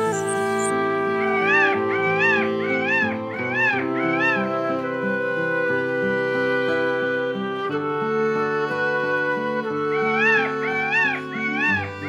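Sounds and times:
peacock calling: 0.0s - 4.8s, 9.8s - 12.0s
background music: 0.0s - 12.0s.

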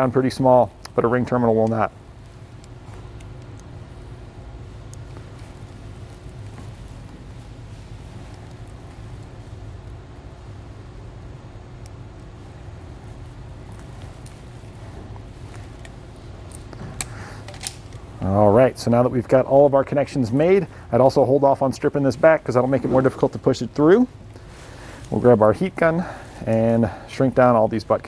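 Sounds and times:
low shop hum: 0.0s - 28.0s
wires being handled: 0.8s - 18.3s, 20.4s - 26.7s.

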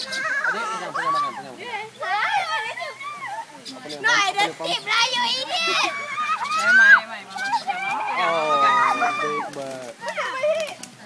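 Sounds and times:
people laughing and squealing: 0.0s - 10.7s.

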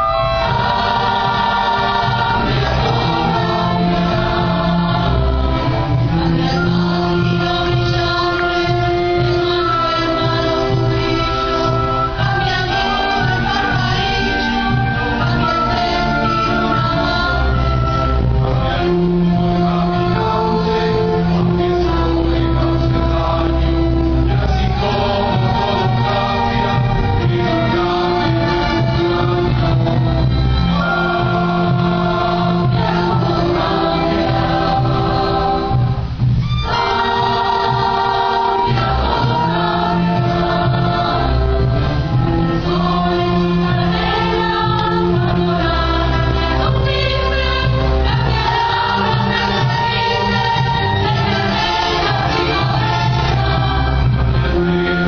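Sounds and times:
orchestra strings sustained chords: 0.0s - 55.0s.

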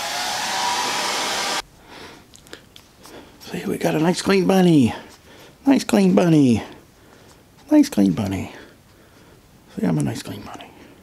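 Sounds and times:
hair dryer blowing: 0.0s - 1.6s.

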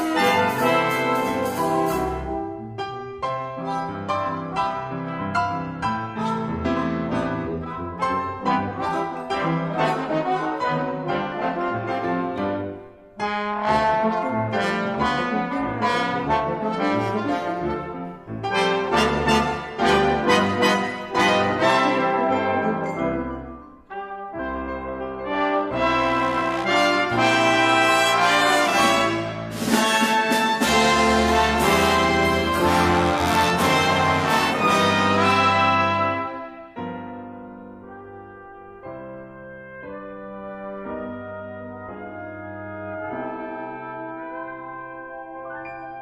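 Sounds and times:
brass ensemble playing: 0.0s - 46.0s.

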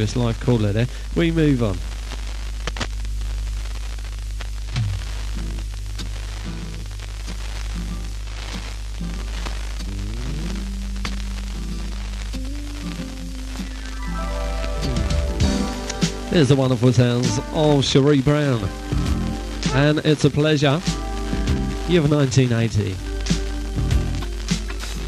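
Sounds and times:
radio hiss: 0.0s - 25.0s
record playing sparse low notes: 0.0s - 25.0s
low hum: 4.2s - 7.7s, 9.2s - 19.6s.

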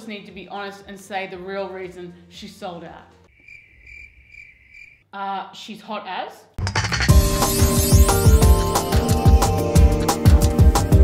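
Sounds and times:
crickets chirping: 3.3s - 5.0s.

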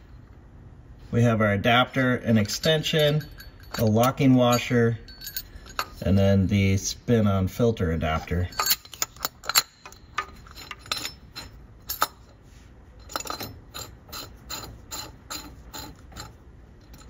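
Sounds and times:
metal parts clicking: 2.4s - 6.0s, 8.4s - 12.3s, 13.0s - 17.0s.

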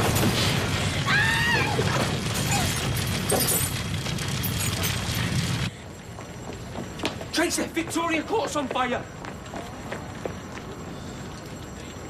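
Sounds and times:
fire roaring and crackling: 0.0s - 5.7s.

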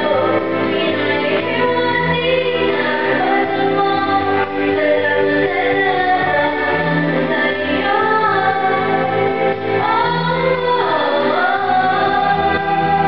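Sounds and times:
instrumental backing music: 0.0s - 13.0s
woman singing into microphone: 0.0s - 13.0s.

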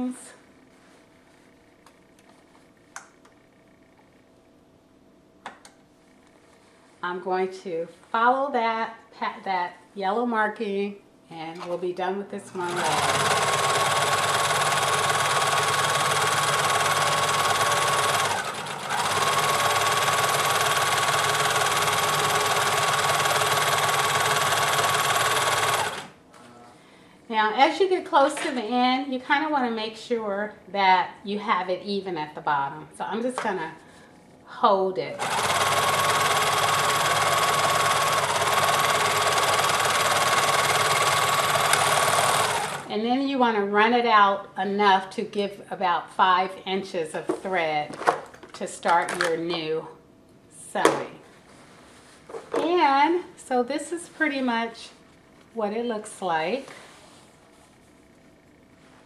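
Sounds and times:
serger sewing machine running: 12.7s - 26.1s, 35.2s - 42.9s.

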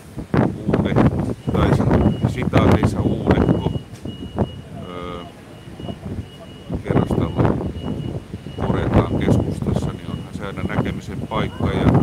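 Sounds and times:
street traffic: 0.0s - 12.0s
voices: 0.6s - 12.0s
reversing alarm beeping: 1.4s - 12.0s.

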